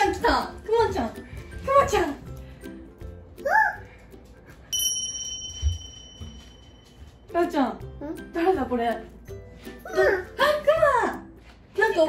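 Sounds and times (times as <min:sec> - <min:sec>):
bright bell ding: 0:04.7 - 0:07.3.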